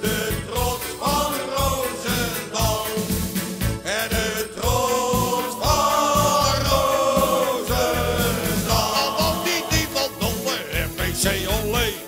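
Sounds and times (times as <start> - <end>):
band with drum beat: 0.0 - 12.0
group of voices singing: 0.0 - 12.0.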